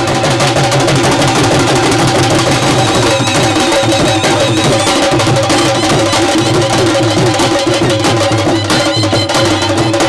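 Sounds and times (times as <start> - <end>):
drums beaten fast with sticks: 0.0 - 10.0.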